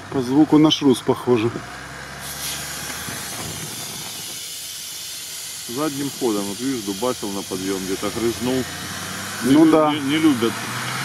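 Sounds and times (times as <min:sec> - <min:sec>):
air hissing from tyre valve: 0:02.2 - 0:10.5.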